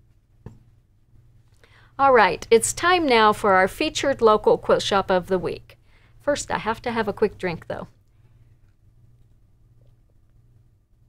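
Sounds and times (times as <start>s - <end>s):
faint low room hum: 0.0s - 11.0s
faint intake of breath: 1.6s - 2.0s, 5.8s - 6.2s.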